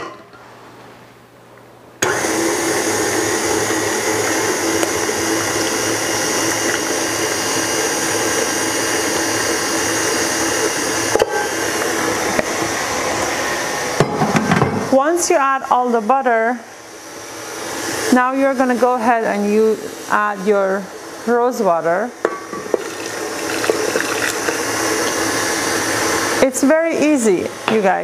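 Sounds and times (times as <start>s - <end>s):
stand mixer motor running: 2.0s - 13.8s, 22.8s - 26.4s.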